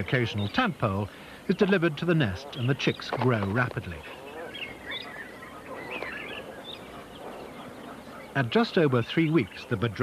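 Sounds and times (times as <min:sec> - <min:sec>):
low hiss: 0:00.0 - 0:04.2.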